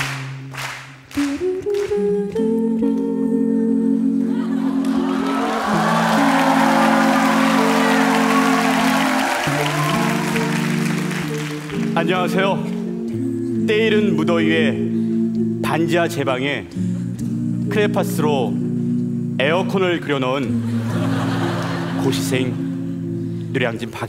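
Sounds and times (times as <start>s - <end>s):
a cappella group singing: 1.2s - 18.6s, 20.4s - 22.3s
audience applause: 4.8s - 12.0s.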